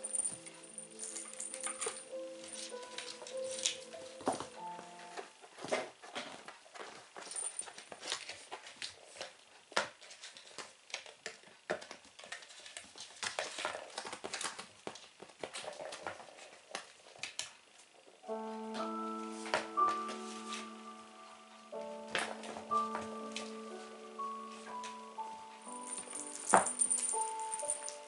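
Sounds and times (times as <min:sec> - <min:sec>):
music with long held notes: 0:00.0 - 0:05.3, 0:18.3 - 0:28.0
kitten paws tapping on floor: 0:00.0 - 0:17.6, 0:21.8 - 0:28.0.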